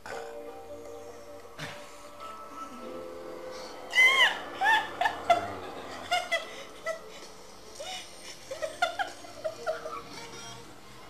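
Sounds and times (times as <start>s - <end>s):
person shrieking: 3.9s - 4.9s
squealing giggles: 3.9s - 10.2s.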